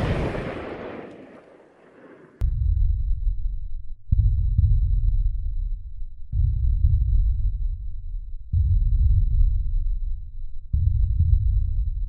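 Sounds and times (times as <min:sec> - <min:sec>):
deep muffled heartbeat pulses: 0:02.4 - 0:12.0.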